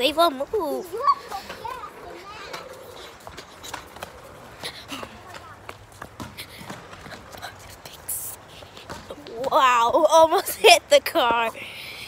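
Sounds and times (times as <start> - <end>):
faint children's voices: 0.0 - 6.6.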